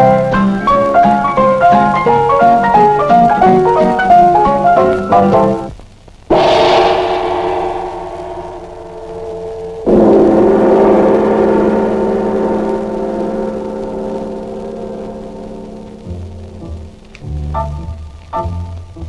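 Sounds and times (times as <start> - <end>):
loud gong-like strikes: 6.3 - 17.1.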